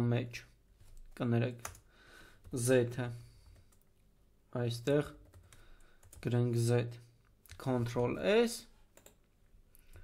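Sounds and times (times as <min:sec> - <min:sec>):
person speaking: 0:02.4 - 0:03.4, 0:04.5 - 0:05.3, 0:06.1 - 0:09.0
typing on computer keyboard: 0:05.2 - 0:06.3, 0:09.0 - 0:09.2.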